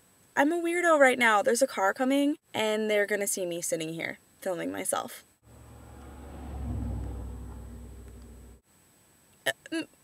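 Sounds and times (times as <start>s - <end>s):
car driving past: 5.4s - 8.6s.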